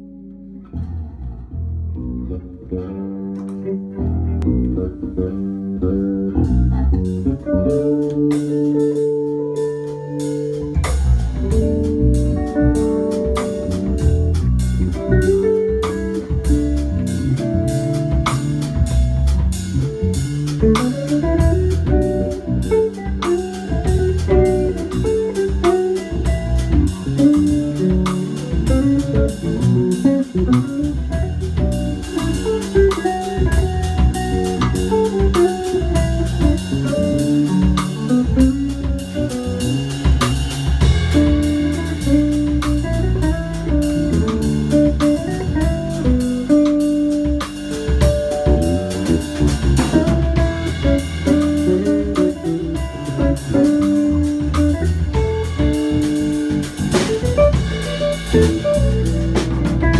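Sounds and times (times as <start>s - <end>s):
electric bass: 0.0s - 59.9s
electric guitar melody: 0.0s - 59.9s
drum kit: 2.7s - 59.9s
hi-hat and cymbal strokes: 30.7s - 59.8s.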